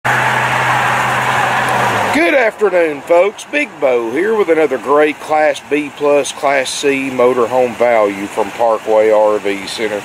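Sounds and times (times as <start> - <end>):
motor vehicle hum and hiss: 0.1 - 10.0.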